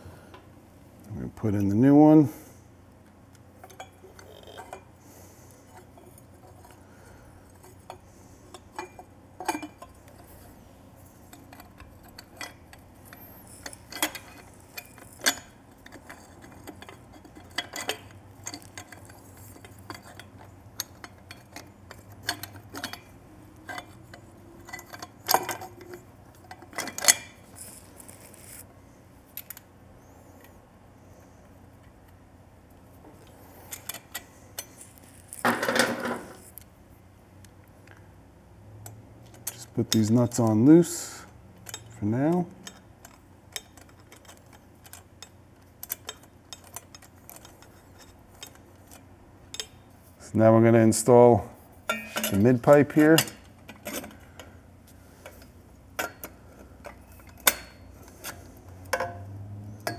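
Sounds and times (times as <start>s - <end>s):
metal exhaust parts clinking: 5.6s - 28.6s, 38.8s - 59.9s.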